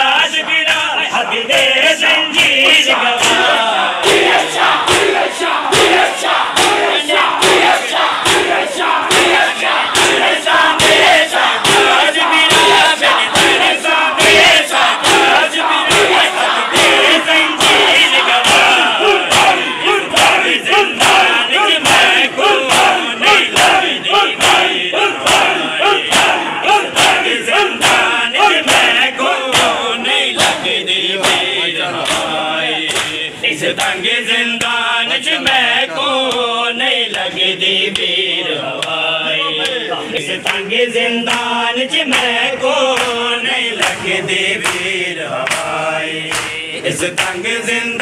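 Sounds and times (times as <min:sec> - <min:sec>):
men shouting together: 0:02.6 - 0:29.8
hands slapping bare chests: 0:32.9 - 0:33.2, 0:44.6 - 0:45.7.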